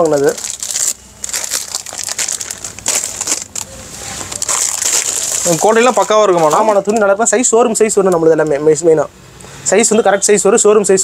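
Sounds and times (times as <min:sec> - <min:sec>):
plastic packets crinkling: 0:00.0 - 0:07.1.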